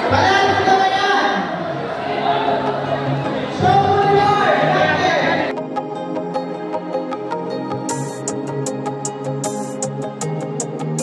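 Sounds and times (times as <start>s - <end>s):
crowd babble in a hall: 0.0s - 6.4s.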